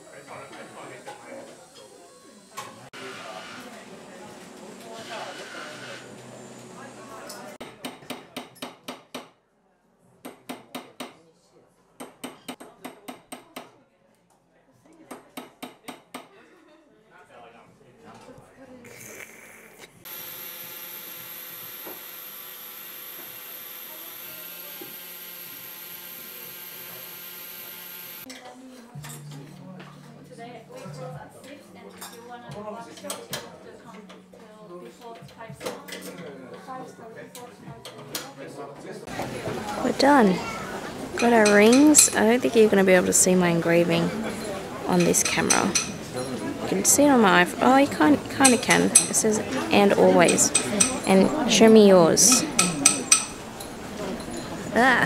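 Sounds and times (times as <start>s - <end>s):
quiet voices talking: 0.0s - 8.6s, 28.2s - 55.0s.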